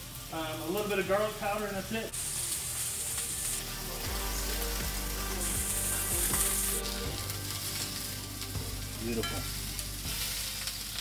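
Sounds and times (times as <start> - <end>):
meat sizzling in a pan: 0.0 - 11.0.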